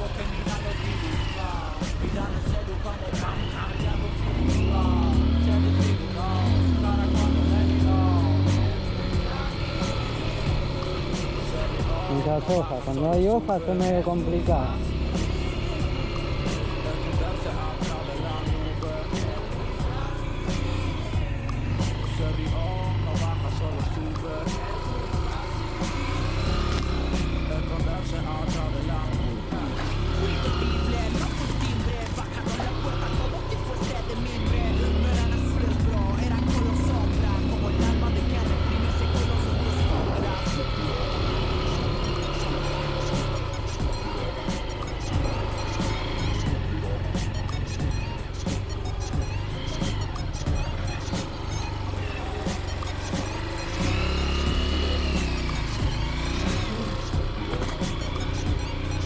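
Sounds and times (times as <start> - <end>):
music with singing and beat: 0.0 - 59.0
small motorcycle engine: 0.0 - 59.0.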